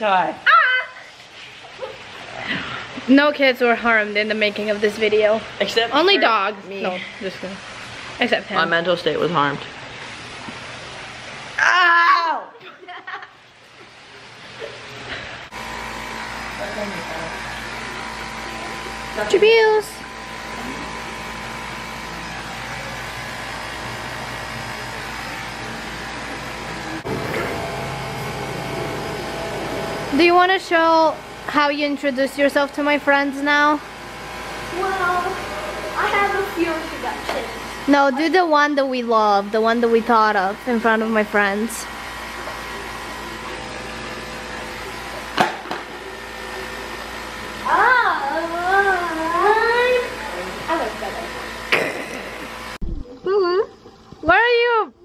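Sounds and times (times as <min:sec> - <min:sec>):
machine hum: 0:00.0 - 0:55.0
boy's drawn-out wavering voice: 0:00.4 - 0:01.1, 0:11.6 - 0:12.6, 0:47.7 - 0:50.1.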